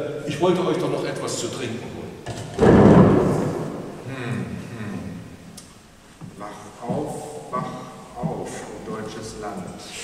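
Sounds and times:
wooden chair thump: 2.2s - 3.9s.

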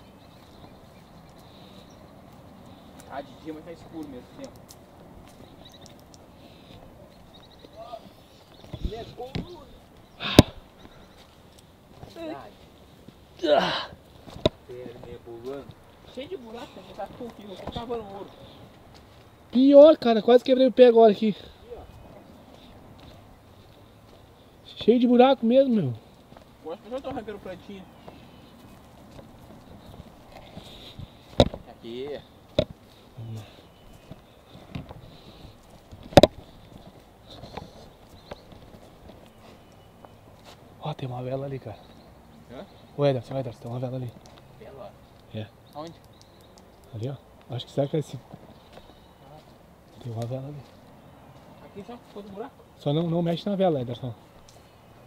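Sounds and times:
footsteps on dirt trail: 0.0s - 13.4s, 14.0s - 19.9s, 21.2s - 45.3s, 47.4s - 55.0s.

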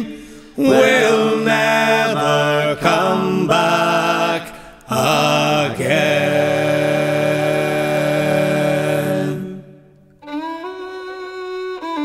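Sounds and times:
man singing a folk lament: 0.0s - 9.4s.

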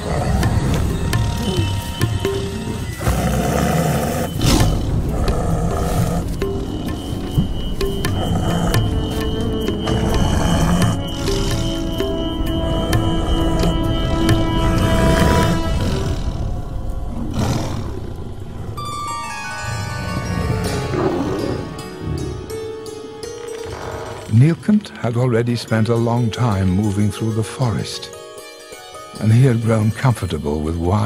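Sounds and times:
lion roaring: 0.0s - 7.0s, 8.1s - 18.3s
background music score: 0.0s - 31.0s.

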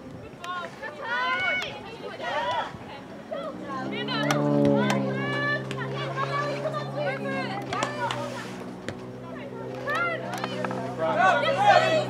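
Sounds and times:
girls shouting: 0.9s - 8.4s, 9.4s - 12.0s.

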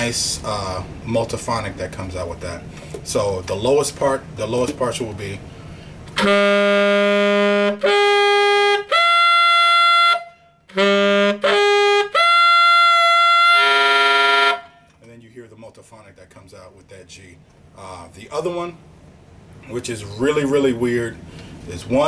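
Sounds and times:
saxophone multiphonic: 6.1s - 15.0s
tenor saxophone overblown notes: 6.2s - 15.0s.

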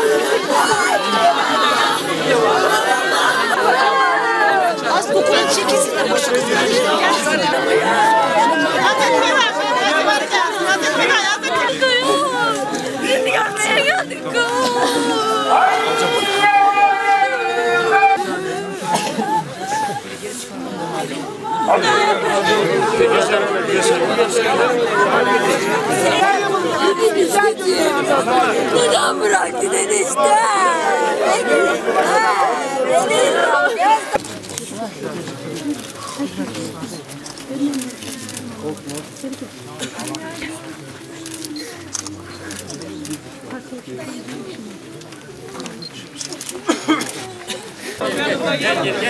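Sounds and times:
people sobbing and moaning: 0.0s - 44.4s, 46.3s - 49.0s
crowd murmur: 0.0s - 49.0s
women crying and wailing: 11.6s - 20.2s.

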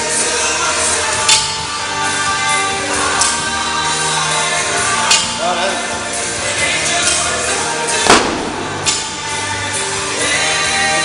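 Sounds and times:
background music with singing: 0.0s - 11.0s.

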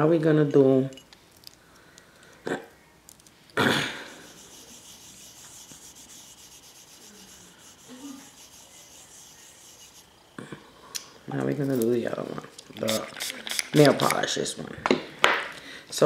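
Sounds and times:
faint steady hiss: 0.0s - 16.0s
rubbing brushing noises: 3.9s - 10.2s.

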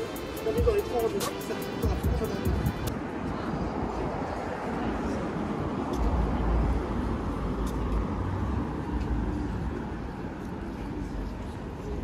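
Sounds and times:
passing vehicles rumbling: 0.0s - 12.0s
street noise: 0.0s - 12.0s.

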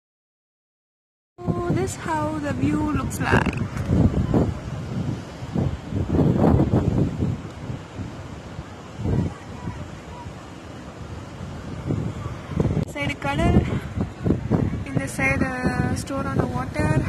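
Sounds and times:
surf breaking on shore: 1.4s - 17.0s
wind buffeting microphone: 1.4s - 17.0s.

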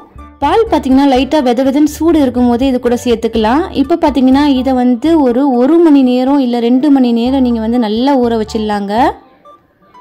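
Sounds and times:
woman speaking: 0.4s - 9.2s.

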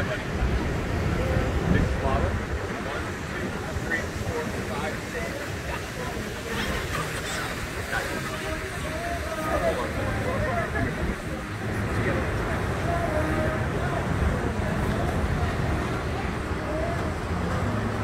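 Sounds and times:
distant people chattering: 0.0s - 18.0s
wind rumbling on microphone: 0.0s - 18.0s.

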